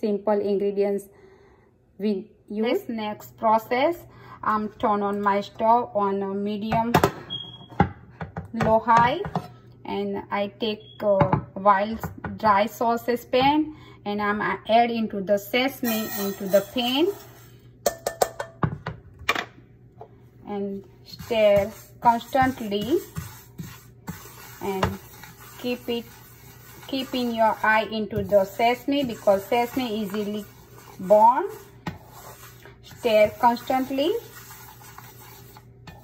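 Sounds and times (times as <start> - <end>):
seeds stirred in a saucepan: 15.8 - 17.6, 21.0 - 36.0
taps and clinks on metal saucepan: 17.8 - 18.8.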